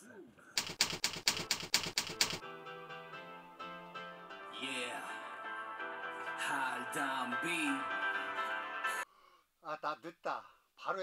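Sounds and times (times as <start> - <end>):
typewriter key clicks: 0.6 - 2.4.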